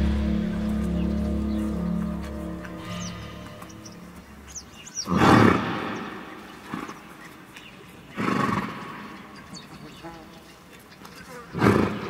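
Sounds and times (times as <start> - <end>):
music: 0.0 - 4.6
small high chirps: 0.0 - 5.1.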